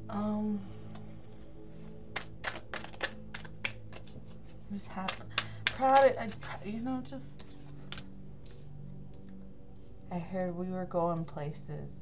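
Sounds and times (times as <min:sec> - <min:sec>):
cards being shuffled: 0:00.9 - 0:09.4.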